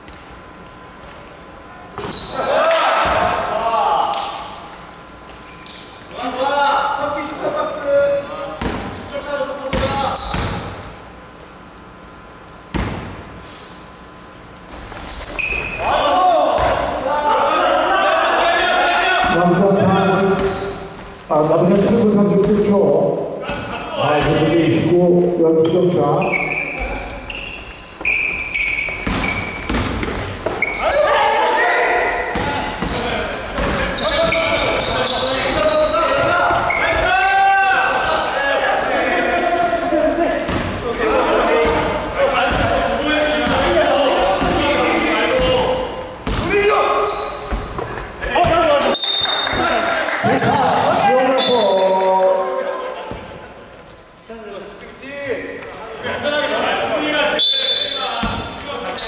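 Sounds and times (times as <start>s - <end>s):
indistinct echoing voices: 1.7s - 4.8s, 15.3s - 27.4s, 30.2s - 59.0s.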